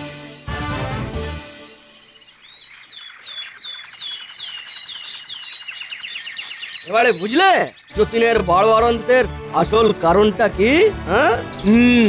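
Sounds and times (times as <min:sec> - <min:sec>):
small birds chirping: 0:01.6 - 0:12.0.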